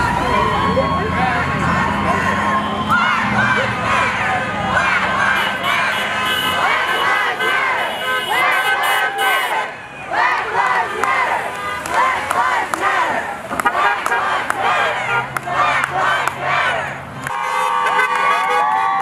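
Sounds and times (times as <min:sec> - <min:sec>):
truck engine passing: 0:00.0 - 0:18.5
crowd cheering and shouting: 0:00.0 - 0:19.0.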